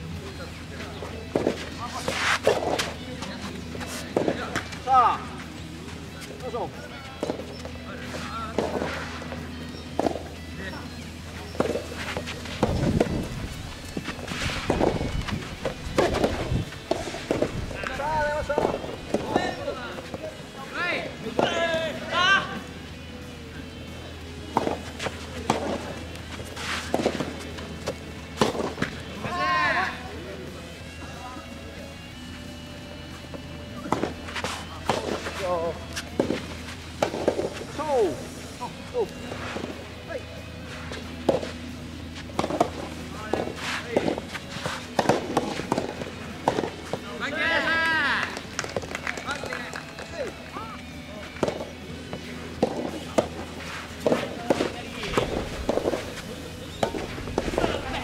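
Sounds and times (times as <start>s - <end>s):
footsteps on court: 0.8s - 10.3s, 11.4s - 20.2s, 24.5s - 29.2s, 33.1s - 37.8s, 40.7s - 47.1s, 48.2s - 58.0s
tennis ball struck by rackets: 8.5s - 10.4s, 11.5s - 13.3s, 13.9s - 17.5s, 24.5s - 29.0s, 33.8s - 37.6s, 40.9s - 41.6s, 42.2s - 47.0s, 51.4s - 57.8s.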